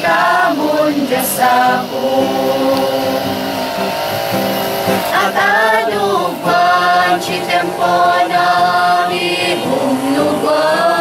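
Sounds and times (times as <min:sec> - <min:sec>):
acoustic guitar: 0:00.0 - 0:11.0
group singing gospel song: 0:00.0 - 0:11.0.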